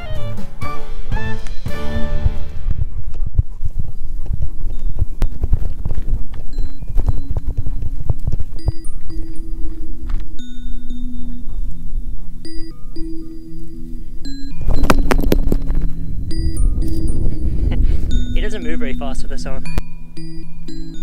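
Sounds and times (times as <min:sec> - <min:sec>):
background music: 0:00.0 - 0:02.8
bell-like music notes: 0:06.5 - 0:21.0.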